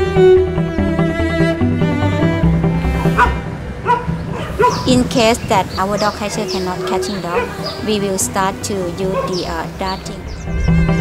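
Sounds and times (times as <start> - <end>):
low cello music: 0.0 - 11.0
dog barking: 3.0 - 5.0, 6.7 - 8.0, 9.0 - 9.6.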